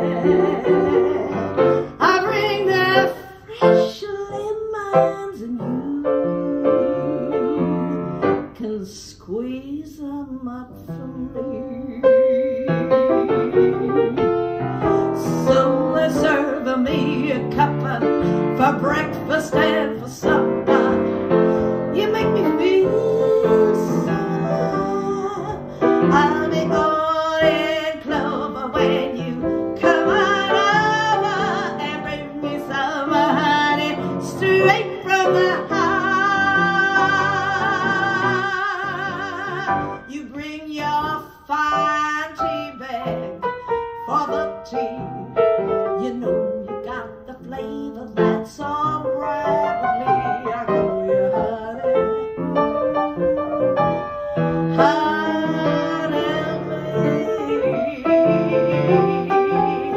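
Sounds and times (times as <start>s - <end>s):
piano accompaniment: 0.0s - 59.9s
woman singing: 0.0s - 59.9s.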